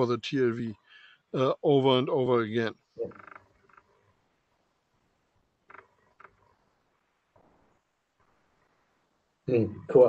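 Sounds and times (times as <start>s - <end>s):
faint voice-like sounds: 0.0s - 0.8s, 1.4s - 3.3s, 9.5s - 10.0s
person saying a word: 9.5s - 10.0s.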